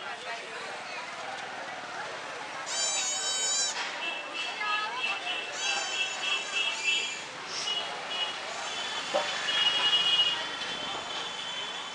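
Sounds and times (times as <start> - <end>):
murmur of crowded street: 0.0 - 11.9.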